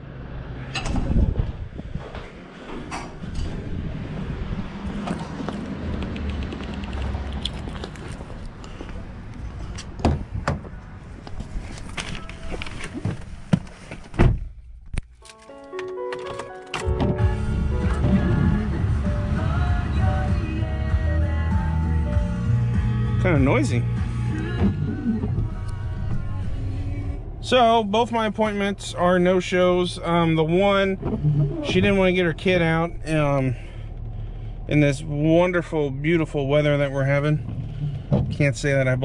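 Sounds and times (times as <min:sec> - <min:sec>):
outdoor noise: 0:00.0 - 0:23.2, 0:23.8 - 0:39.0
music from car radio: 0:16.8 - 0:27.1.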